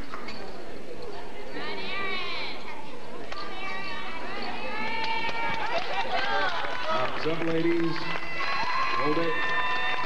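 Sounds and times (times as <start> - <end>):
crowd chattering: 0.0 - 10.0.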